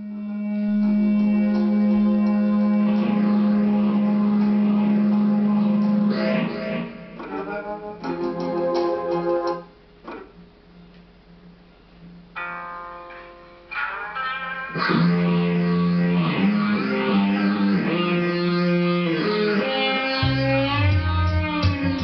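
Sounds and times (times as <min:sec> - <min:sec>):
electric guitar drone: 0:00.0 - 0:09.7, 0:12.4 - 0:22.0
electric guitar chords: 0:00.0 - 0:11.0, 0:12.1 - 0:22.0.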